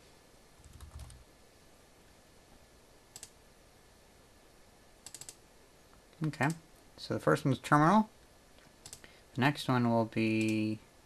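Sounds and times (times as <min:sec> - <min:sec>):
laptop keys clicking: 0:00.6 - 0:01.2, 0:05.0 - 0:05.4, 0:08.8 - 0:09.1.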